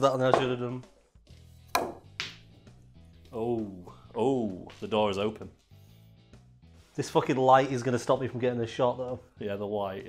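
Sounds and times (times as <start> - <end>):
cue striking ball: 1.8 - 2.5.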